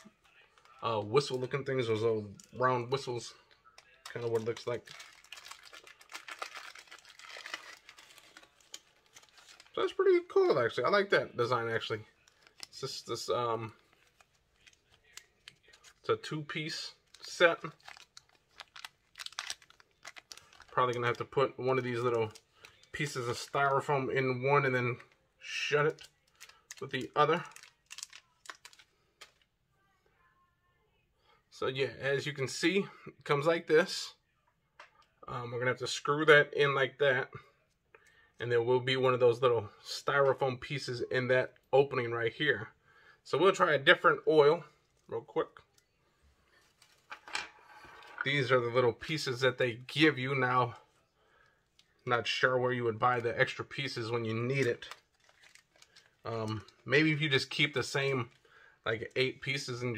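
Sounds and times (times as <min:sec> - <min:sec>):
plastic bag crinkling: 0:00.0 - 0:10.7, 0:11.5 - 0:23.9, 0:25.9 - 0:29.4, 0:46.5 - 0:48.5, 0:52.8 - 0:59.6.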